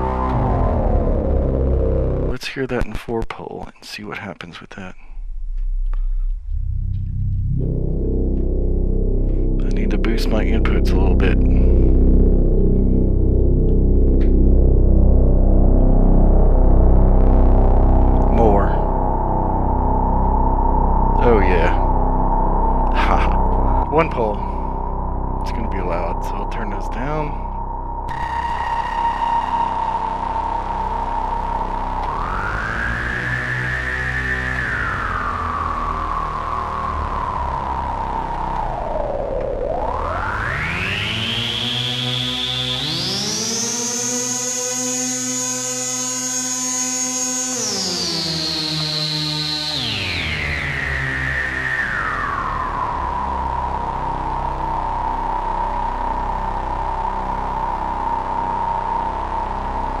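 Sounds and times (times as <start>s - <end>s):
low sustained synth notes: 0.0s - 2.6s, 5.0s - 60.0s
whistling resonant filter tone: 5.0s - 60.0s.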